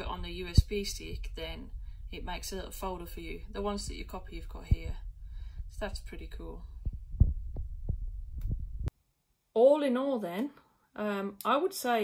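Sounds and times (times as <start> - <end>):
microphone handling rumble: 0.0 - 8.9.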